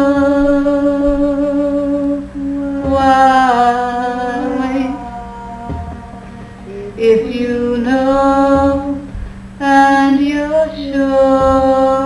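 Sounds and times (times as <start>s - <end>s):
steady low hum: 0.0s - 12.0s
woman singing a held note: 0.0s - 12.0s.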